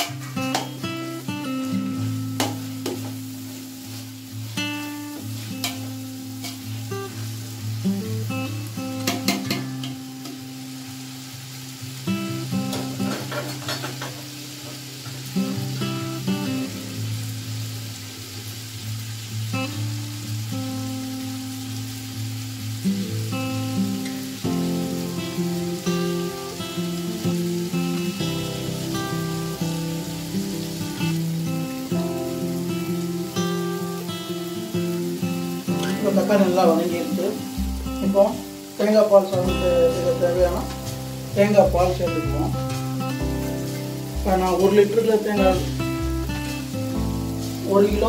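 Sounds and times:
plucked string music: 0.0s - 11.2s, 11.8s - 17.5s, 19.5s - 48.0s
vegetables sizzling in oil: 0.0s - 48.0s.

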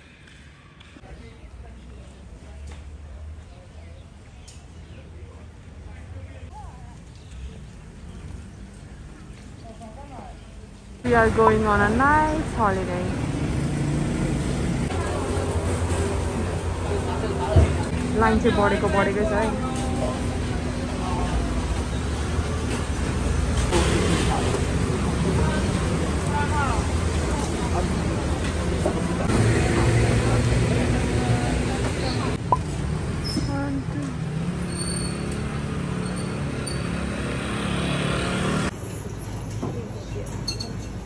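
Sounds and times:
low rumble of road vehicles: 0.0s - 41.0s
street traffic: 0.0s - 41.0s.

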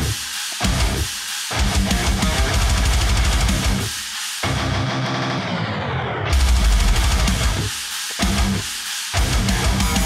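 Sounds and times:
drum kit: 0.0s - 5.7s, 6.3s - 10.0s
distorted electric guitar: 0.0s - 10.0s.

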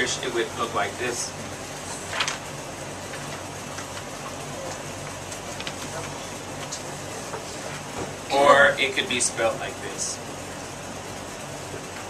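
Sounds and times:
room noise hiss and hum: 0.0s - 12.0s.

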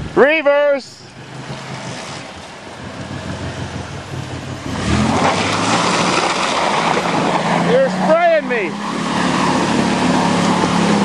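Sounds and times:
minivan engine revving: 1.1s - 11.0s
tyres spinning and spraying mud: 1.2s - 11.0s.

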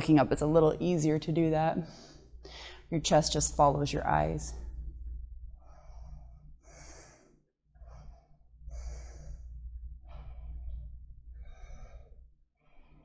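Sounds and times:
steady low hum: 0.0s - 13.0s
woman breathing: 1.8s - 2.9s, 5.5s - 13.0s.

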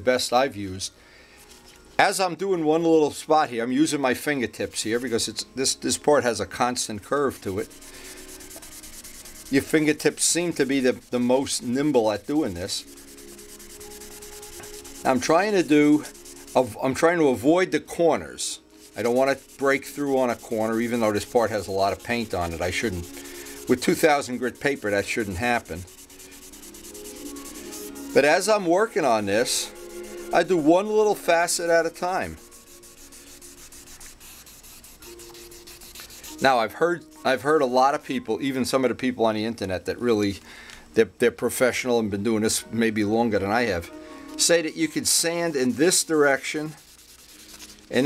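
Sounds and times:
sandpaper rubbing: 7.3s - 17.5s, 18.7s - 36.6s, 44.3s - 48.0s.

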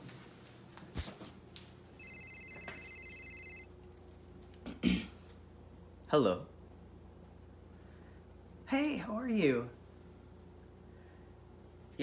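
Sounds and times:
phone ringing: 2.0s - 3.8s
person coughing: 4.7s - 5.2s.

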